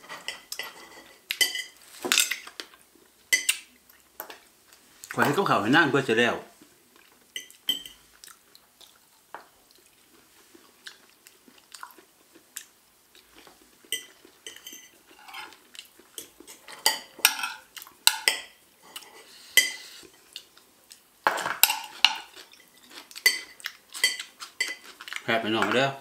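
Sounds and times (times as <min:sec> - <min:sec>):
cutlery clinking on a plate: 0:00.0 - 0:02.6, 0:07.4 - 0:08.0, 0:13.9 - 0:15.6, 0:16.2 - 0:19.9, 0:21.3 - 0:25.0.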